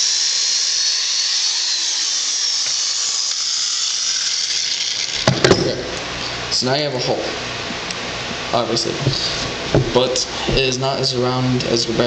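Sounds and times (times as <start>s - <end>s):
electric drill whining: 0.0s - 6.4s.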